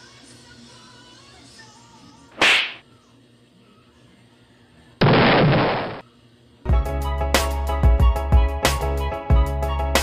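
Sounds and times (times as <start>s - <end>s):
whip-crack swoosh: 2.4s - 2.8s.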